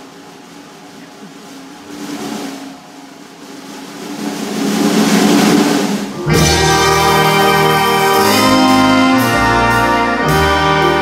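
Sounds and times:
drum roll on cymbals and snare: 0:00.0 - 0:11.0.

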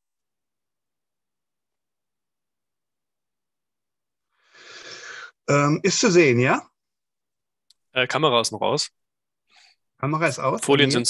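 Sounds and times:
short in-breath: 0:04.4 - 0:05.4.

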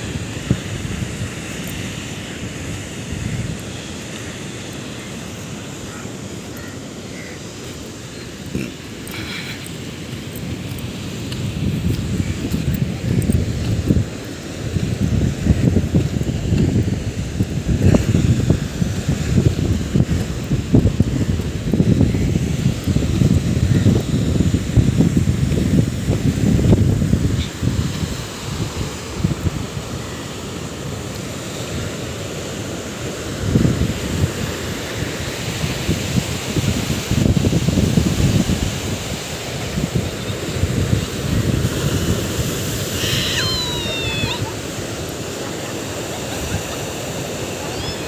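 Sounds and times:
sea waves breaking: 0:00.0 - 0:48.0
wind buffeting microphone: 0:00.0 - 0:48.0.

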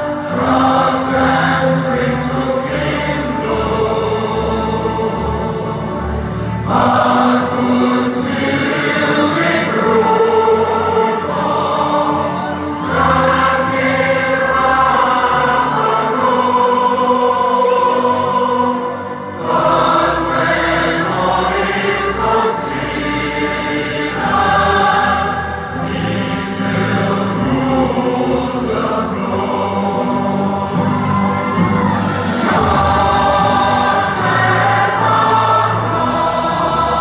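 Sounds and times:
choir singing solemn anthem: 0:00.0 - 0:37.0.

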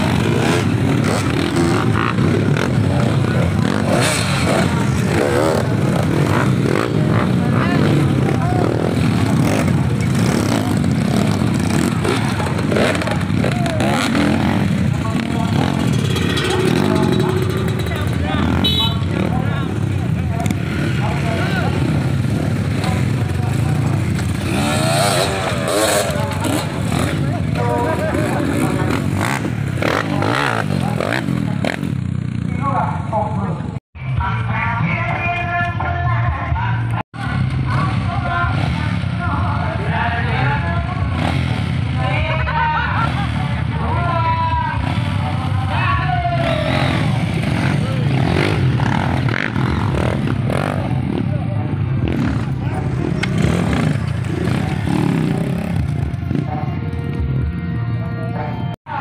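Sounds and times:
dirt bike engines revving: 0:00.0 - 0:59.0
people's voices: 0:00.0 - 0:59.0.

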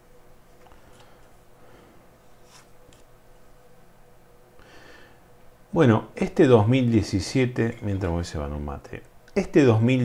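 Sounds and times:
faint steady hum: 0:00.0 - 0:10.0.

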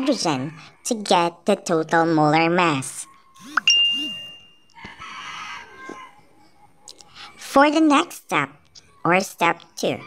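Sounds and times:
faint hoarse background sounds: 0:00.0 - 0:10.0
high ringing ding: 0:03.6 - 0:04.7.

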